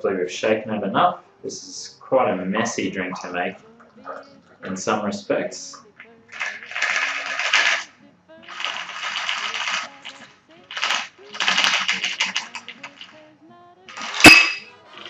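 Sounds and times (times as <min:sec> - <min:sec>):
ice rattling in cocktail shaker: 0:06.3 - 0:07.9, 0:08.5 - 0:13.2, 0:13.9 - 0:15.0
sharp metallic clink: 0:14.2 - 0:14.7.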